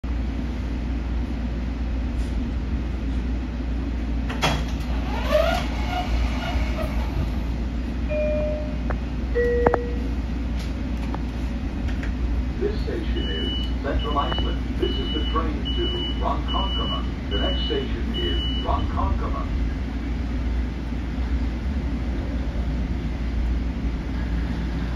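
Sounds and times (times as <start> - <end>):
railcar rumble and hum: 0.0 - 24.9.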